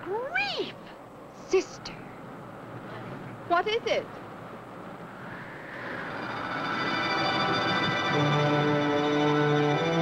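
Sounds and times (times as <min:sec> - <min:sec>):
rushing whoosh: 0:05.0 - 0:08.5
orchestral music: 0:05.9 - 0:10.0.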